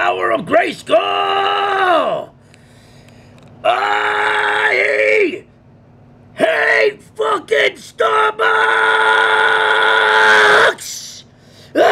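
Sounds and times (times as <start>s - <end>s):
man's drawn-out vocal cry: 3.6s - 5.4s, 6.4s - 11.9s.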